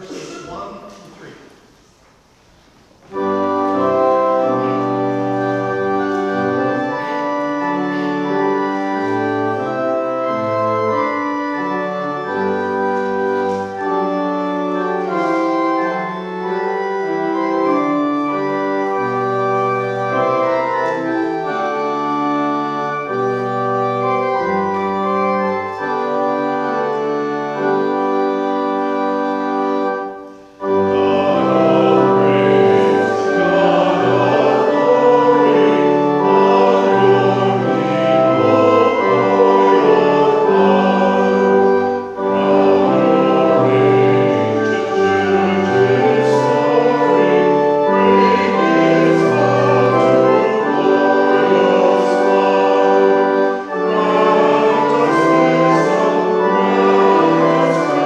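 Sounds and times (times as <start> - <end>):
church organ playing chords: 3.0 - 58.0
congregation singing a hymn: 3.1 - 58.0.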